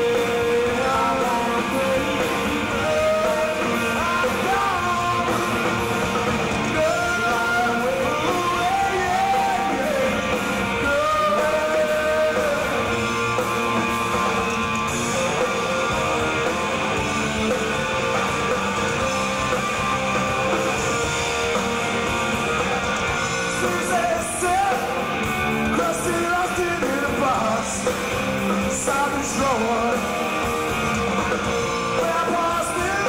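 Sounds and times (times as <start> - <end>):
lead vocal singing: 0.0 - 13.3, 22.7 - 30.6, 31.8 - 33.0
rock band playing: 0.0 - 33.0.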